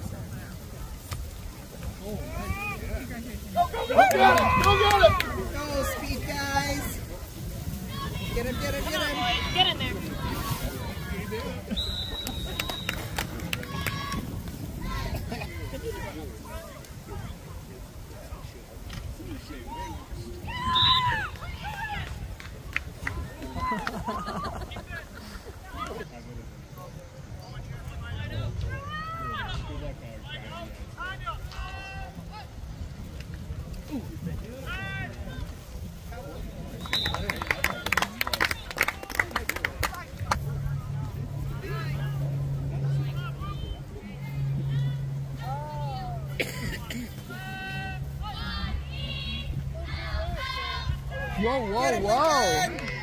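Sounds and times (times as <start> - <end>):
low engine-like hum: 36.2 - 53.0.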